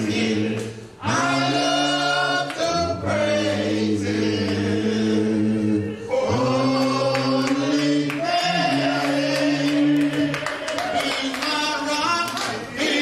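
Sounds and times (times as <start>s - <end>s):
choir singing long notes: 0.0s - 13.0s.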